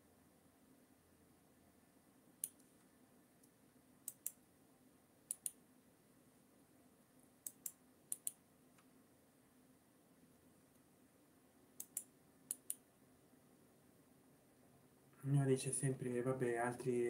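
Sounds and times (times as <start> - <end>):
computer mouse clicking: 4.0 - 4.4, 5.3 - 5.6, 7.4 - 8.4, 11.8 - 12.8.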